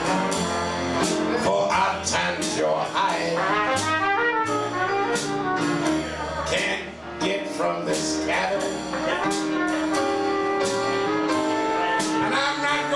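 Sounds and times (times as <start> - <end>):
trumpet playing jazz: 0.0 - 12.9
upright bass notes: 0.0 - 12.9.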